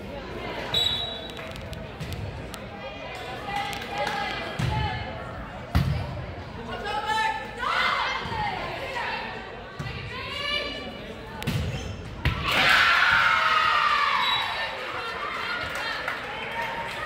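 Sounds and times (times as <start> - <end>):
voices calling out and cheering: 6.6 - 17.0.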